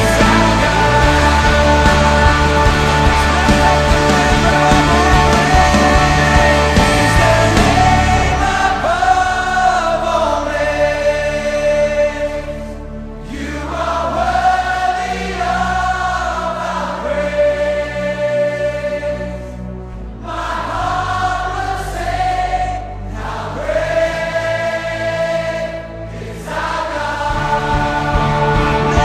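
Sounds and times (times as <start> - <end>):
instrumental backing: 0.0 - 9.6
choir singing: 0.0 - 29.0.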